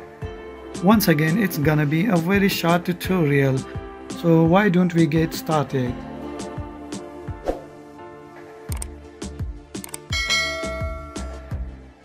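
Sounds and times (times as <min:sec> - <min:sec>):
background music with beat: 0:00.0 - 0:12.0
bright bell chime: 0:10.1 - 0:11.6.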